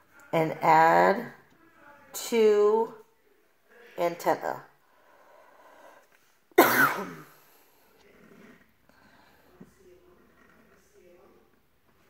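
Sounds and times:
woman coughing: 6.6 - 7.4.

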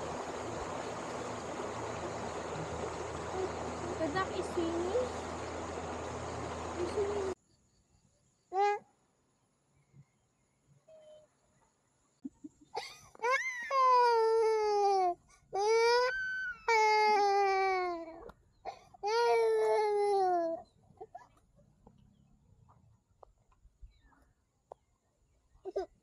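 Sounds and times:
toddler crying: 13.2 - 18.2, 19.0 - 20.6.

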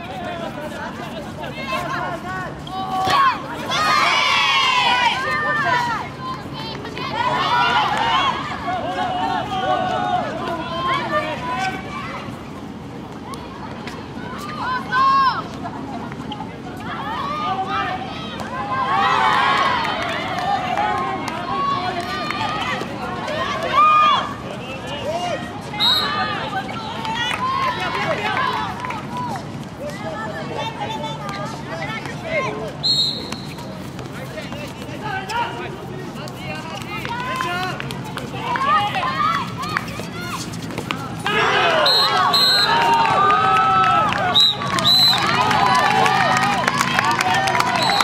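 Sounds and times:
people shouting and calling out: 0.0 - 12.4, 34.2 - 48.0
running footsteps on court: 0.0 - 17.6, 18.3 - 48.0
loud drawn-out shout: 41.2 - 48.0.

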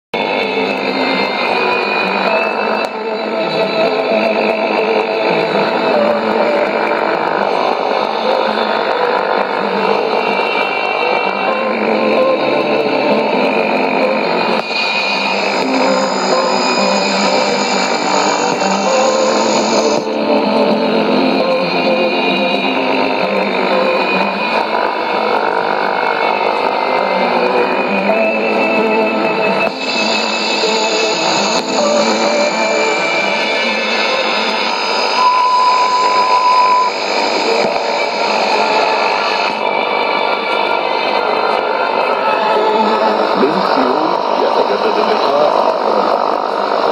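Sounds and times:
music on shortwave radio: 0.2 - 46.9
radio noise: 4.4 - 20.2, 29.4 - 39.6, 41.2 - 46.9
steady beep tone: 9.4 - 26.8, 27.6 - 41.3.

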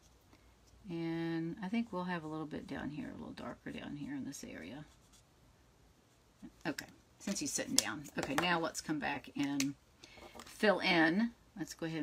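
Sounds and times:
woman speaking: 0.8 - 5.0, 6.4 - 9.8, 10.5 - 12.0.

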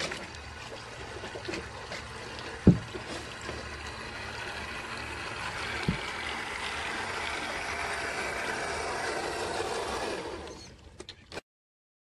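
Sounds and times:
paddle wheels churning water: 0.0 - 11.0.

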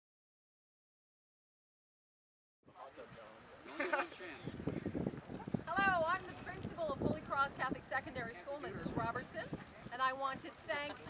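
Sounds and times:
people talking: 5.7 - 11.0.

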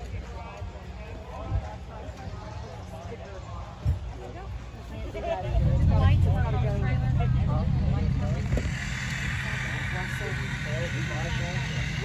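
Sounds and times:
car engine low rumble: 5.2 - 12.0.

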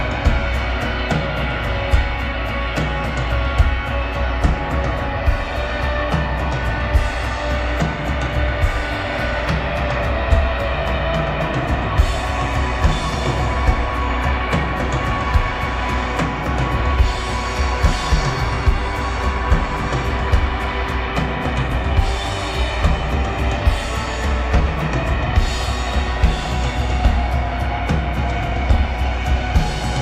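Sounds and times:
drum kit steady beat: 0.0 - 30.0
electric guitars: 0.0 - 30.0
keyboards: 0.0 - 30.0.

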